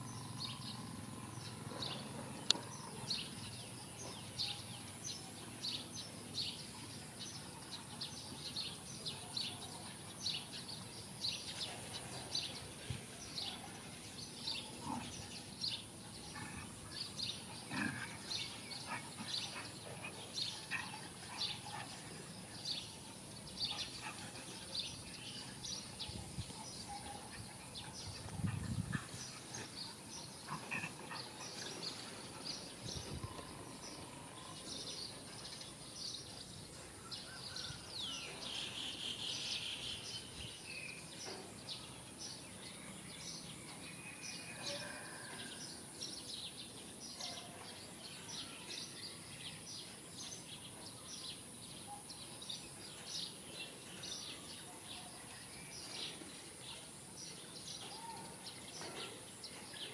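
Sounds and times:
small birds chirping: 0:00.0 - 0:59.9.

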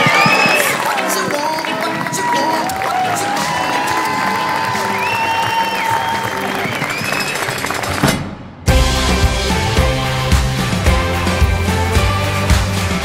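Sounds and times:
guests applauding and cheering: 0:00.0 - 0:08.1
background music: 0:00.0 - 0:13.0
music with heavy bass beat: 0:08.7 - 0:13.0.

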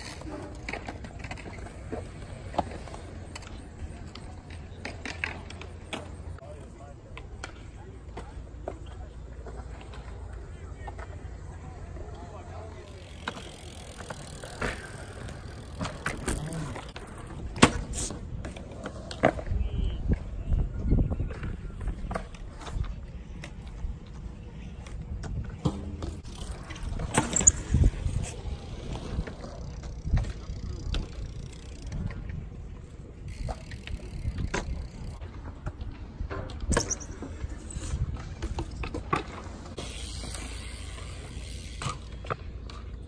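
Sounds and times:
bike rolling on concrete: 0:00.0 - 0:43.0.

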